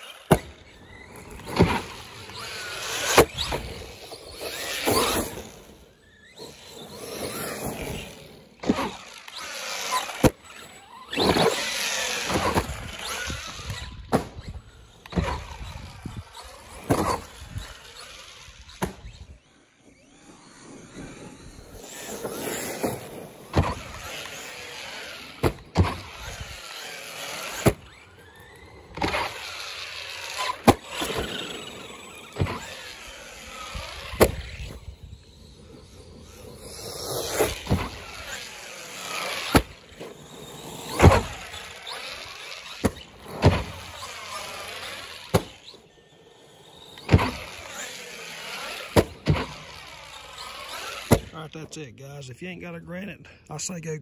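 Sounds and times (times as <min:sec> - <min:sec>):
electric motor whining: 0:00.0 - 0:51.4.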